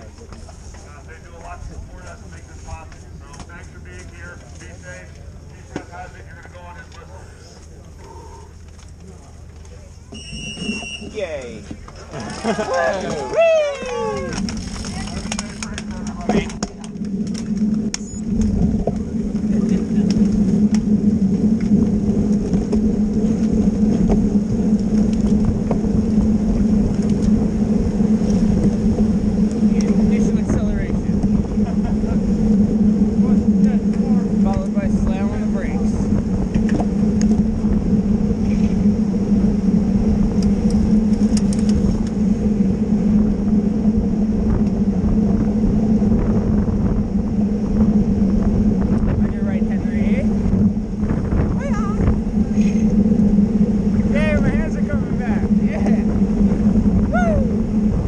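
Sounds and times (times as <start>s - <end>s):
wind rush: 0.0s - 8.7s, 10.7s - 58.0s
constant low hum: 0.0s - 58.0s
road rumble: 0.0s - 58.0s.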